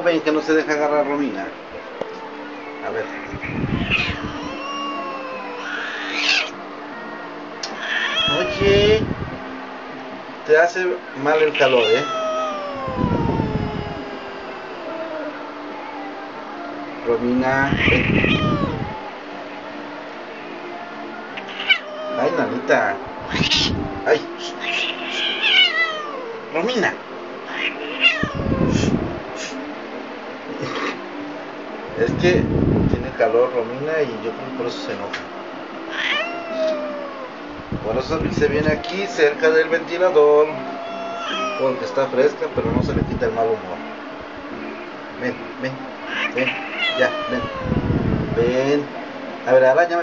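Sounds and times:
cat yowling: 0:03.1 - 0:06.6, 0:07.6 - 0:09.0, 0:11.2 - 0:15.6, 0:17.6 - 0:19.1, 0:21.3 - 0:26.8, 0:27.4 - 0:29.6, 0:35.8 - 0:37.4, 0:40.4 - 0:42.4, 0:46.0 - 0:48.0
cat hissing: 0:03.2 - 0:06.6, 0:07.6 - 0:09.0, 0:11.3 - 0:15.4, 0:17.6 - 0:19.0, 0:21.4 - 0:22.6, 0:23.2 - 0:26.5, 0:27.4 - 0:29.6, 0:30.6 - 0:31.0, 0:35.9 - 0:37.3, 0:40.6 - 0:42.1, 0:46.0 - 0:48.0.

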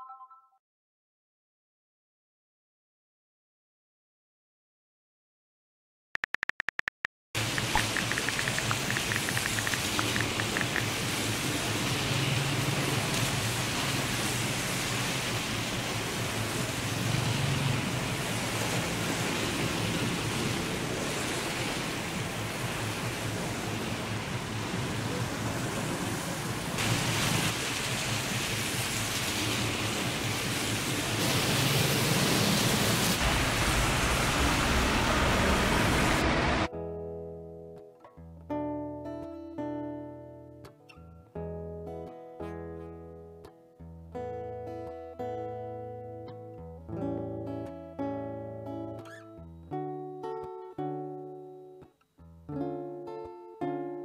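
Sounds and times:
rapid clicks: 0:06.2 - 0:10.9
steady rain: 0:07.4 - 0:36.7.

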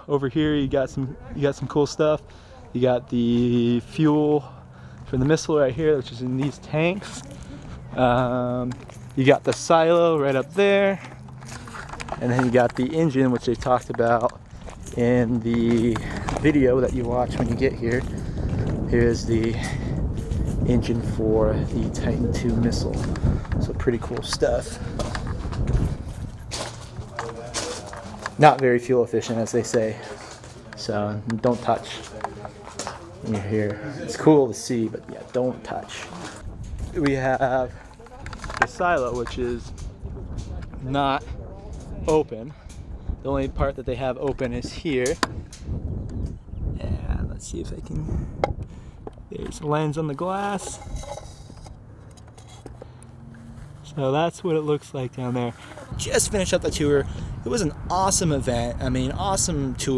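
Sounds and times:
faint voices: 0:00.0 - 0:43.2
footsteps on gravel: 0:06.1 - 0:21.0, 0:21.6 - 0:28.6, 0:29.3 - 0:33.8, 0:50.2 - 0:54.1.

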